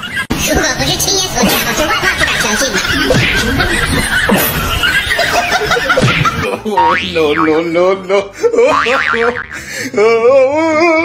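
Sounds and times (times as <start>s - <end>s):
people laughing and snickering: 1.3s - 10.2s.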